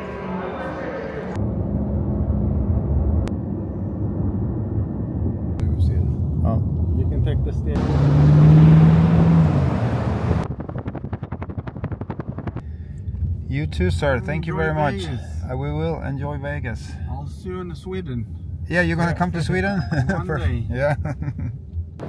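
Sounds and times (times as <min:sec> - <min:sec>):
steady low drone: 0:00.0 - 0:07.8
car ride rumble through traffic: 0:00.1 - 0:22.0.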